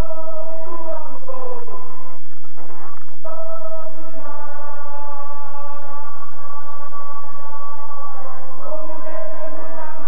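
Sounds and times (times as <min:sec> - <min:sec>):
voices singing together: 0:00.0 - 0:02.2, 0:03.2 - 0:10.0.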